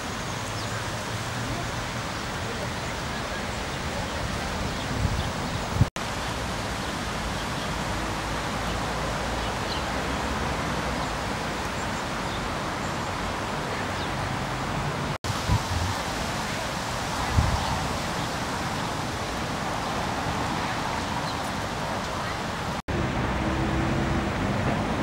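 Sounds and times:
outdoor background rush: 0:00.0 - 0:25.0.

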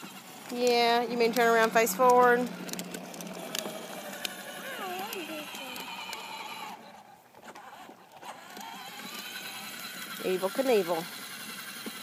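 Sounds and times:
toy motorcycle electric motor whirring: 0:00.0 - 0:12.0.

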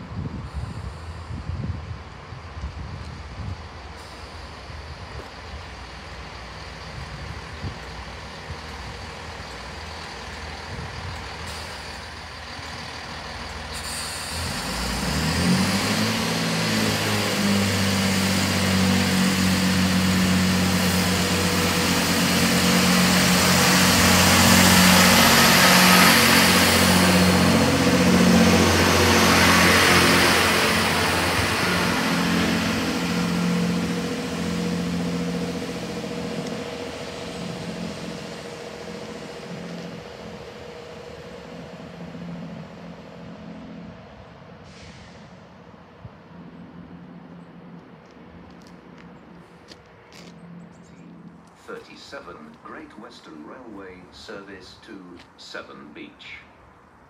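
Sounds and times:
train wheels on rails: 0:00.0 - 0:55.4
diesel train engines: 0:00.0 - 0:57.0.

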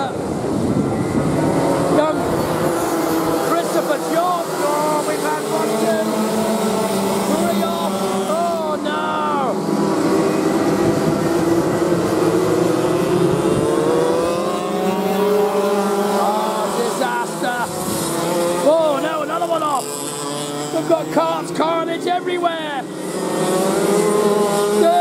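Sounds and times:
racing kart engines: 0:00.0 - 0:25.0.

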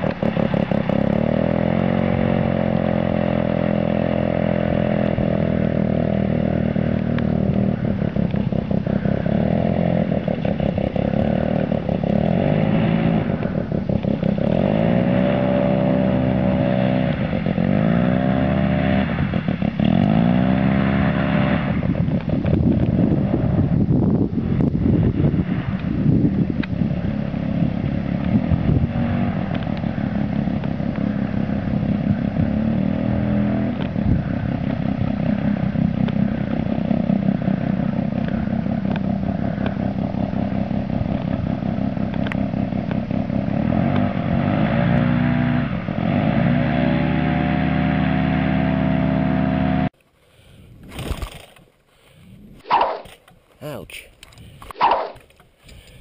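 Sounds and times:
paramotor engine running: 0:00.0 - 0:50.0.

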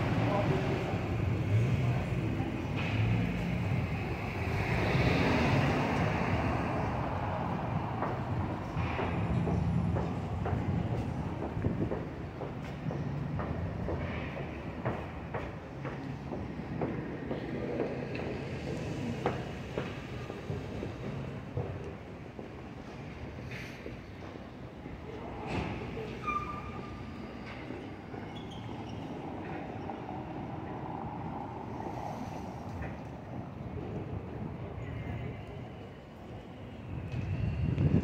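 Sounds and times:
traffic rumble: 0:00.0 - 0:38.0.

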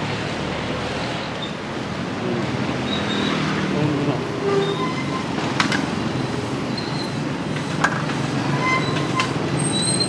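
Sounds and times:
passing road traffic rumble: 0:00.0 - 0:10.0.

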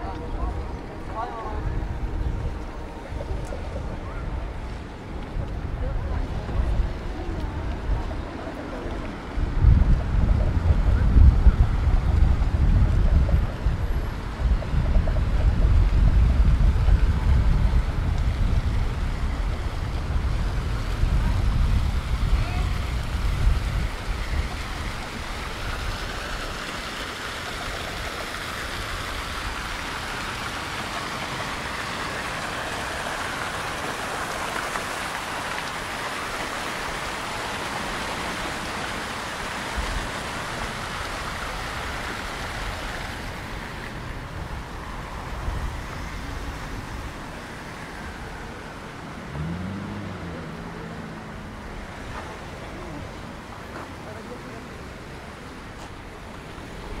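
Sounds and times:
street traffic: 0:00.0 - 0:57.0
fountain water splashing into basin: 0:01.8 - 0:57.0.

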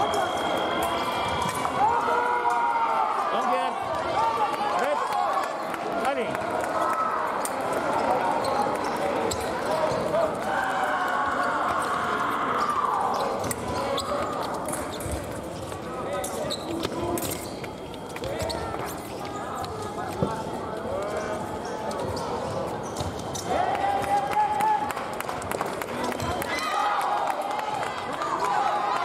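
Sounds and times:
many voices: 0:00.0 - 0:29.0.

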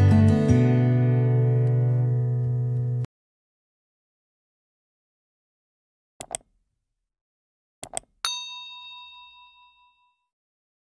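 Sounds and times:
double mouse click: 0:06.2 - 0:06.5, 0:07.8 - 0:08.1
bright bell ding: 0:08.2 - 0:10.3.

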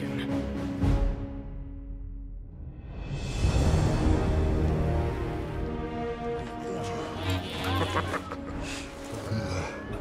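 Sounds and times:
film score music: 0:00.0 - 0:10.0.

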